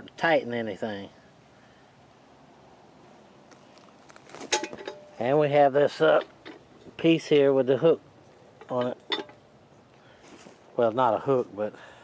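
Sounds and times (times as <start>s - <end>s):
faint outdoor background hiss: 0.0s - 12.0s.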